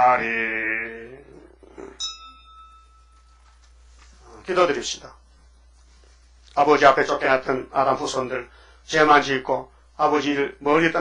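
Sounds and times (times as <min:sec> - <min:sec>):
bright ding: 0:02.0 - 0:03.7.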